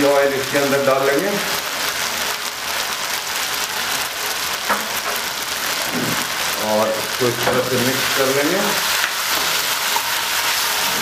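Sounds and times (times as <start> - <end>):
sauce sizzling in a wok: 0.0 - 11.0.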